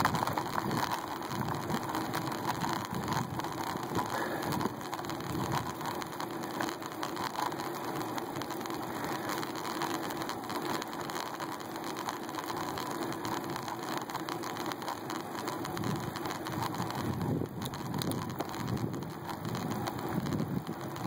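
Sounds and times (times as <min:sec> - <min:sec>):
bicycle tyres rolling on asphalt: 0:00.0 - 0:21.0
handlebar rattle and vibration: 0:00.0 - 0:21.0.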